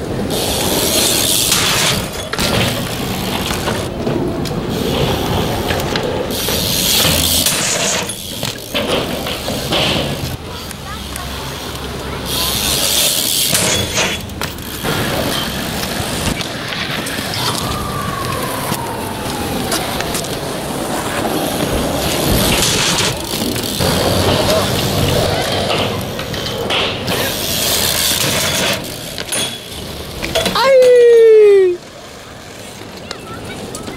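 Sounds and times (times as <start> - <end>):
wheels rolling over concrete: 0.0 - 33.9
person yelling: 30.5 - 31.8.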